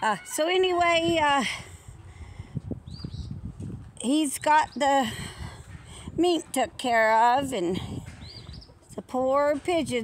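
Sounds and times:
footsteps on dirt: 2.6 - 10.0.

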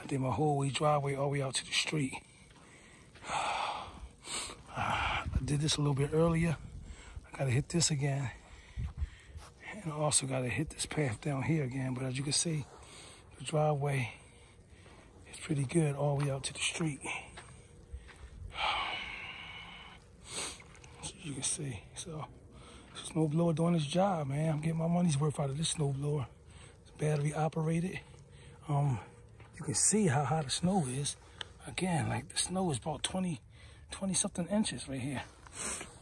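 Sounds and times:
man breathing close to microphone: 2.2 - 5.5, 6.6 - 7.3, 8.4 - 9.6, 14.1 - 15.3, 17.0 - 20.9, 22.4 - 23.0, 33.5 - 33.9
person exhaling noisily: 3.2 - 5.4, 18.5 - 20.8.

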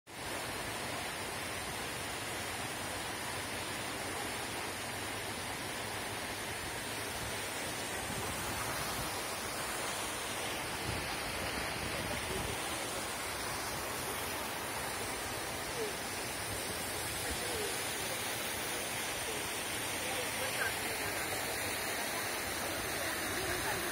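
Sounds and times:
mountain stream and waterfall rushing: 0.1 - 23.9.

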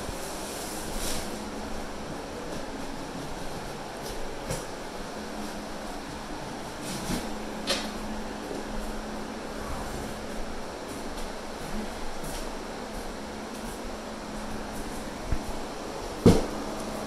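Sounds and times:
low motor hum: 0.0 - 17.0.

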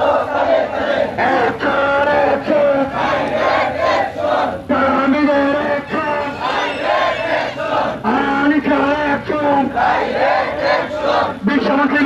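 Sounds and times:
crowd of men chanting: 0.0 - 11.4.

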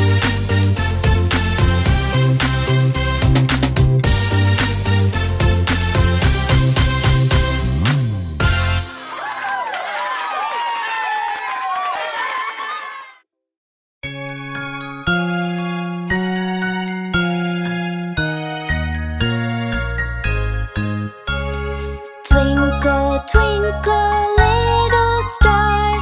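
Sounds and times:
instrumental children's song: 0.0 - 9.6, 14.0 - 26.0.

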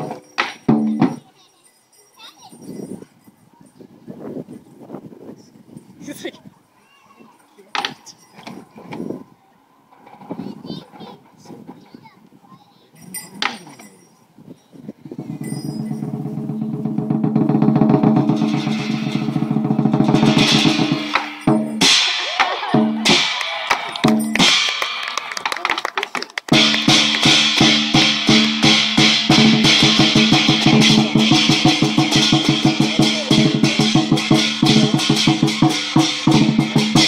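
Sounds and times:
cymbals: 15.4 - 25.2, 26.5 - 37.0
drum beaten in a fast roll: 15.7 - 23.4, 26.5 - 37.0.

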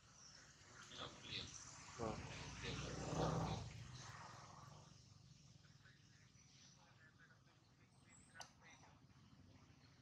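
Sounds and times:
low animal call: 2.0 - 3.6.

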